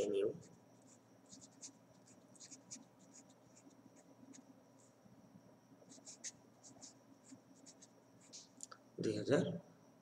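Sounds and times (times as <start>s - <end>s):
pen scratching on paper: 0.4s - 4.4s, 5.9s - 8.5s.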